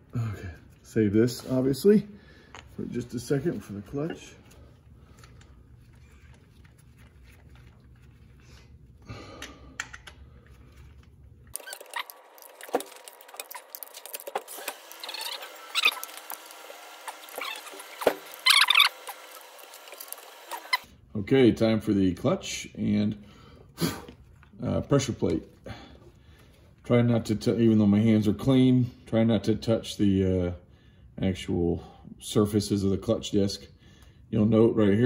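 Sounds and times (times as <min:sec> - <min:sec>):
faint handling sounds: 0:00.4 - 0:09.0, 0:09.8 - 0:16.5.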